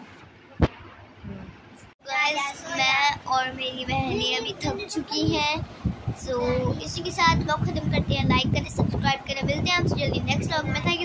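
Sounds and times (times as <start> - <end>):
girl singing: 2.0 - 5.6.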